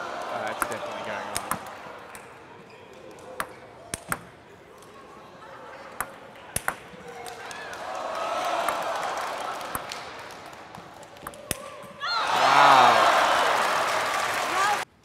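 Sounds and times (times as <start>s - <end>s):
crowd cheering and clapping: 0.0s - 2.1s, 7.0s - 14.9s
crowd voices: 0.0s - 14.8s
table tennis ball clicks: 0.5s - 2.4s, 3.0s - 4.9s, 5.9s - 7.4s, 9.6s - 10.0s, 10.8s - 11.6s.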